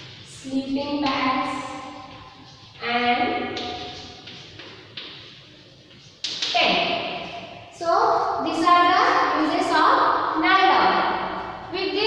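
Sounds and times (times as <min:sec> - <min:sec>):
woman speaking: 0:00.3 - 0:01.8, 0:02.8 - 0:03.6, 0:06.5 - 0:07.0, 0:07.7 - 0:12.0
chalk tapping on chalkboard: 0:00.9 - 0:06.8.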